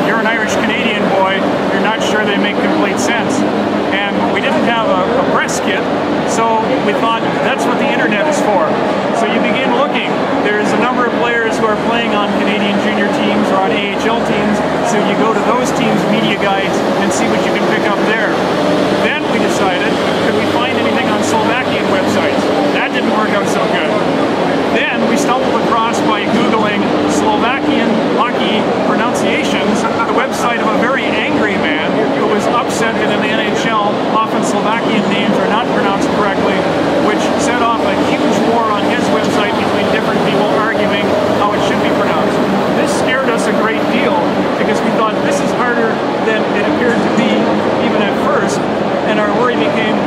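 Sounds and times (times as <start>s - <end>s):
person speaking: 0.0s - 50.0s
person talking: 0.0s - 50.0s.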